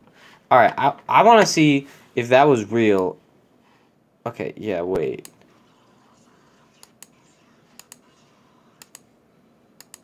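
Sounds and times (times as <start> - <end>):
faint sharp clicks in pairs: 9.8 - 10.0.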